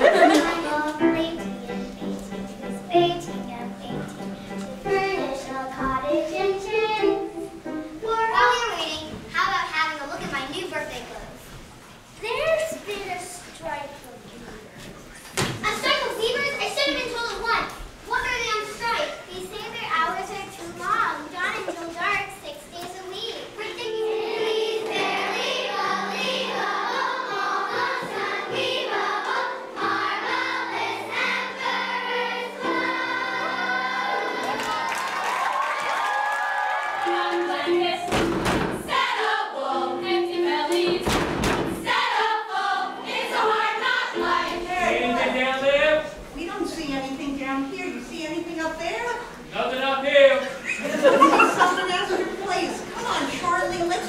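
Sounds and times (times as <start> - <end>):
girls' voices overlapping: 0.0 - 7.1, 8.0 - 25.4, 46.0 - 49.6, 50.5 - 54.0
thumps on stage floor: 15.3 - 15.7, 38.1 - 38.9, 40.8 - 41.8
women's chorus singing: 24.1 - 35.4, 36.6 - 45.4.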